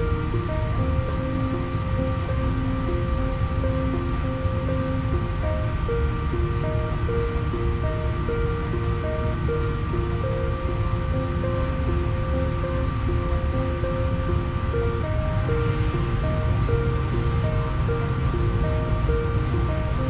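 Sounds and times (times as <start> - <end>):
low rushing noise: 0.0 - 20.0
slow melody of held notes: 0.0 - 20.0.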